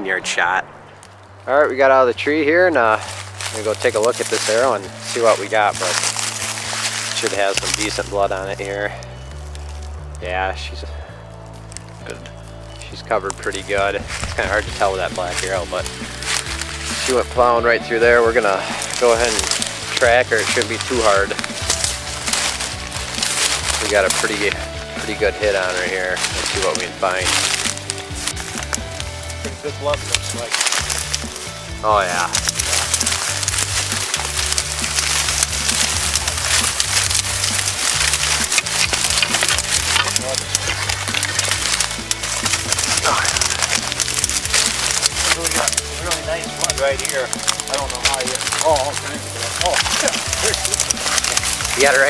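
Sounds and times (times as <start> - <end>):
background music with low bass: 0.0 - 52.0
dry reeds rustling and crackling: 0.1 - 52.0.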